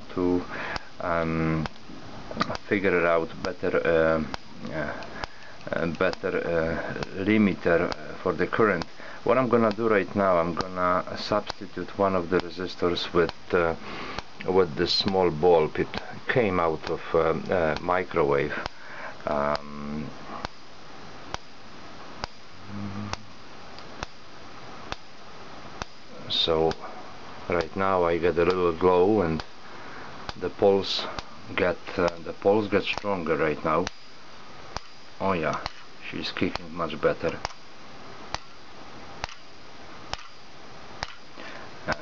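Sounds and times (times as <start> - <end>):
pulse coil sharp click: 1.5 - 3.6, 4.2 - 6.4, 7.0 - 9.9, 16.8 - 21.6, 22.2 - 24.3, 24.9 - 26.9, 31.9 - 37.7, 38.3 - 41.3.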